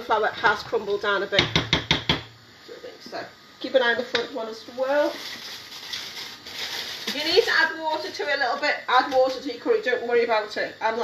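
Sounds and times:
gas hob hissing: 0.0s - 11.0s.

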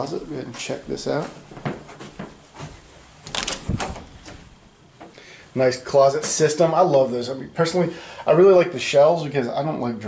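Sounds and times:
door knob and latch clicks: 3.2s - 4.1s.

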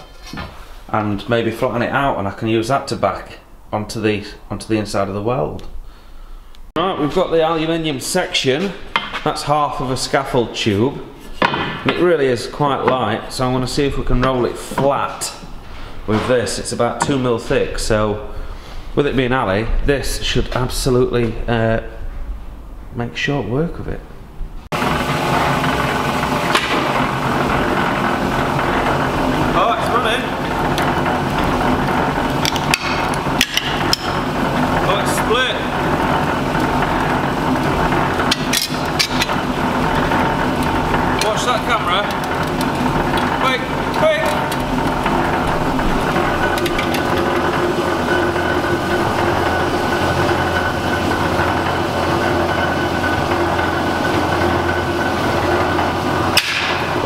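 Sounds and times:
metal bending rolls humming: 6.8s - 57.0s
sharp metallic knocks: 32.4s - 34.3s, 37.8s - 57.0s.

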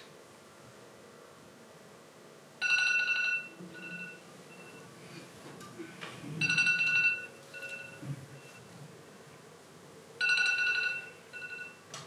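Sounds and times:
electronic ringtone: 2.6s - 4.8s, 6.4s - 8.6s, 10.2s - 11.8s.

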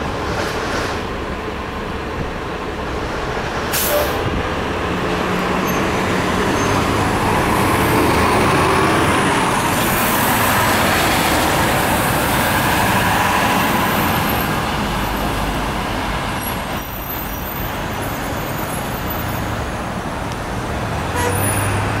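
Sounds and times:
bus driving away: 0.0s - 22.0s
surrounding traffic: 0.0s - 22.0s.

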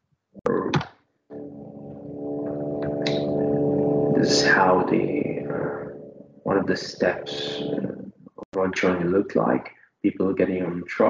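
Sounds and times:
speech: 0.4s - 0.8s, 2.5s - 3.5s, 4.1s - 5.9s, 6.5s - 11.0s
steady pitched drone: 1.3s - 8.1s.

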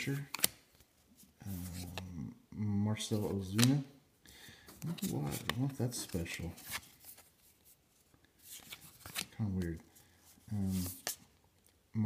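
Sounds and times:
cards sliding rustle: 0.0s - 2.1s, 3.5s - 3.8s, 4.7s - 11.4s.

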